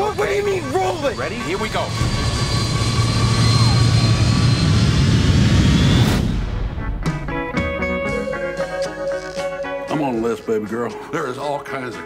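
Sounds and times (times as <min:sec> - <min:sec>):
jet engines roaring: 0:00.0 - 0:07.0
thin high whine: 0:00.5 - 0:06.2
music: 0:06.1 - 0:12.0.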